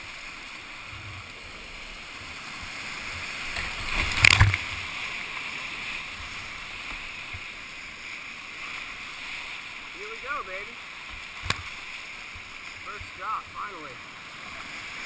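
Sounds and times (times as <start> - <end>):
whitewater rapids rushing: 0.0 - 15.0
kayak splashing into water: 2.8 - 7.4, 11.0 - 13.2.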